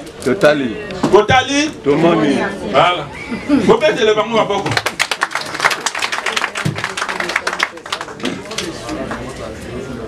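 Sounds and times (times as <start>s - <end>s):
crowd clapping: 4.6s - 9.5s.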